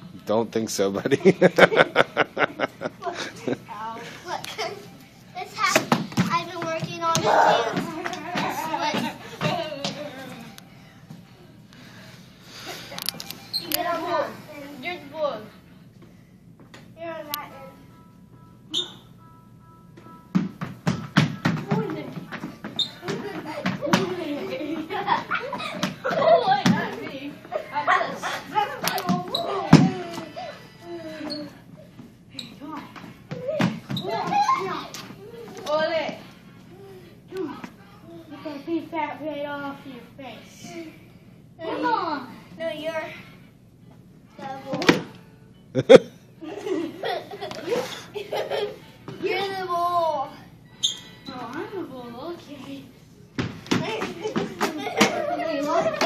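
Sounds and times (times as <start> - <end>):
children's feet stamping on wooden floor: 20.3 - 27.1, 53.4 - 56.0.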